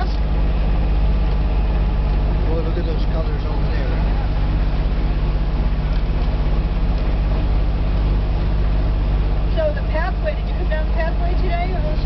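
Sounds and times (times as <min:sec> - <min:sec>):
tyre and road noise: 0:00.0 - 0:12.0
vehicle engine droning: 0:00.0 - 0:12.0.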